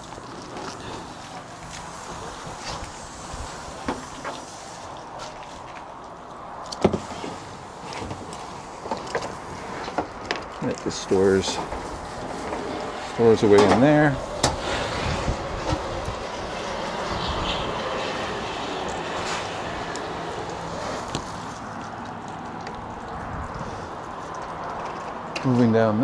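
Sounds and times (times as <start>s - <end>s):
outdoor background hiss: 0.0s - 26.0s.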